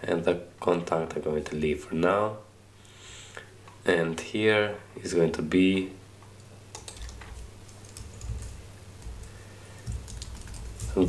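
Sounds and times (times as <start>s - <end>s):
typing on a computer keyboard: 6.7s - 11.0s.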